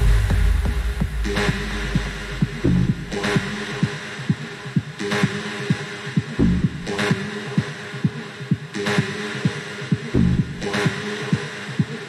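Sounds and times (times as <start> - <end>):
techno kick drum: 0.0 - 12.0.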